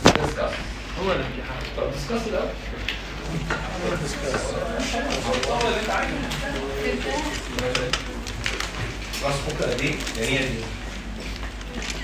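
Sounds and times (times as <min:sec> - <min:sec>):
low mains hum: 0:00.0 - 0:12.0
voices talking in a room: 0:00.0 - 0:12.0.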